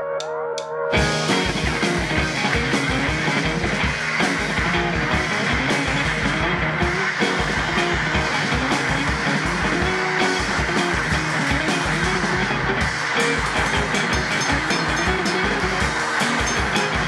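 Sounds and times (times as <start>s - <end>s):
strummed electric guitar: 0.9s - 17.0s
drum kit beat: 1.0s - 17.0s.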